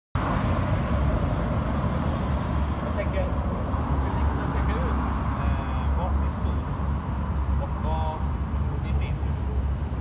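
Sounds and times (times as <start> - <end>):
street traffic rumble: 0.2 - 10.0.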